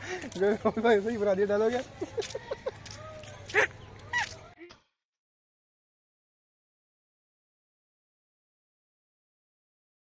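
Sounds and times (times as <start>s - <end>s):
men laughing: 1.8s - 4.4s.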